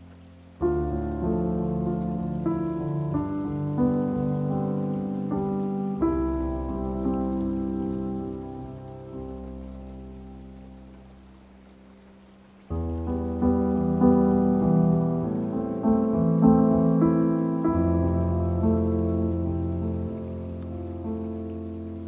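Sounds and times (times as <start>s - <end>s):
slow gentle piano chords: 0.0s - 22.0s.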